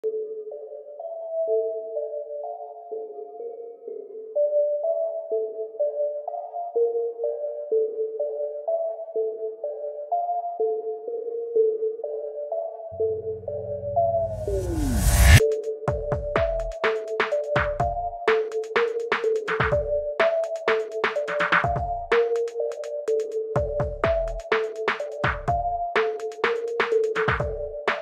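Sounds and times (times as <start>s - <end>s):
sparse melody of single notes: 10.6s - 14.6s
deep bass: 13.0s - 15.4s.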